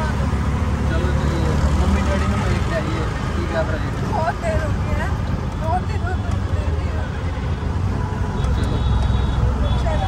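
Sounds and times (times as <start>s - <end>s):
auto-rickshaw engine running: 0.0s - 10.0s
road noise: 0.0s - 10.0s.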